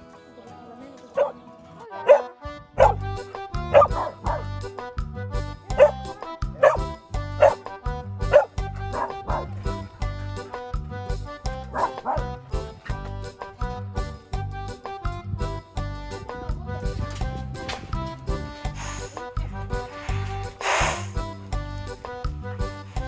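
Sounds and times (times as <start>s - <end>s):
background music with steady beat: 0.0s - 23.0s
dog barking: 1.2s - 1.4s, 2.0s - 3.0s, 3.7s - 4.5s, 5.7s - 6.0s, 6.6s - 7.7s, 8.3s - 9.6s, 11.7s - 12.4s.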